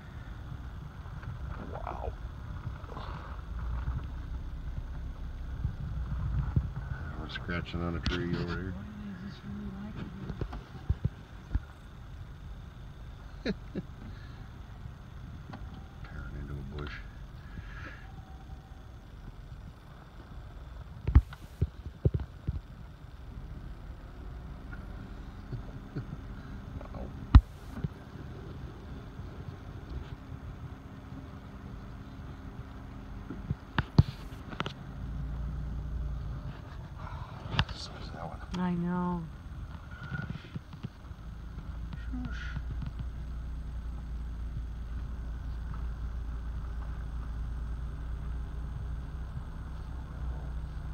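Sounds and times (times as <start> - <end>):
car engine idling: 0.0 - 50.9.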